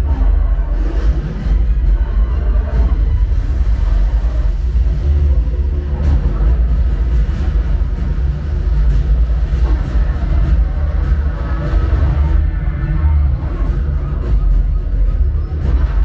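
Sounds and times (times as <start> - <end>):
deep bass rumble: 0.0 - 16.0
movie music and action effects: 0.0 - 16.0.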